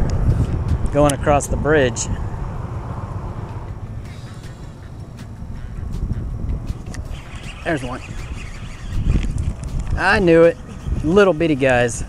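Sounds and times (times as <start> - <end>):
traffic rumble on bridge: 0.0 - 12.0.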